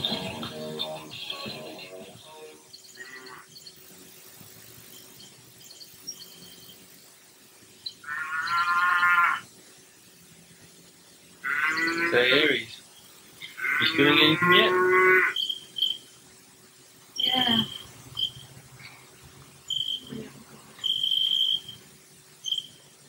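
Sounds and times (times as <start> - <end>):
long drawn-out vocal calls: 0.0 - 3.8, 7.8 - 9.6, 11.4 - 16.2, 17.1 - 23.0.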